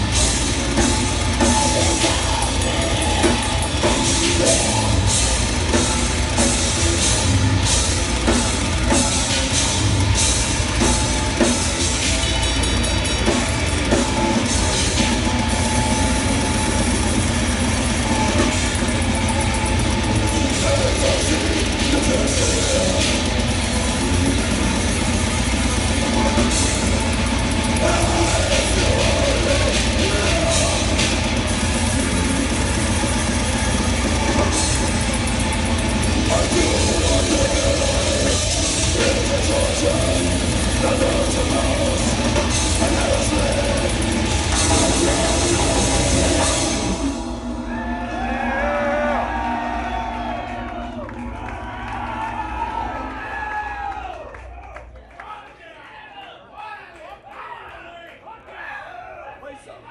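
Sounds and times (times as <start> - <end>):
distorted electric guitar: 0.0 - 53.9
fast pounding drum kit: 0.0 - 54.4
harsh screamed vocals: 36.0 - 59.9.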